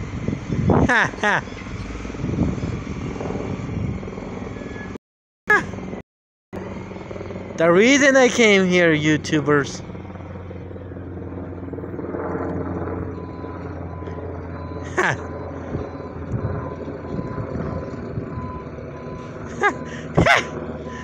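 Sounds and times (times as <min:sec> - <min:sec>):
distant truck engine running: 0:00.0 - 0:06.0, 0:06.6 - 0:21.0
reversing alarm beeping: 0:13.0 - 0:19.9.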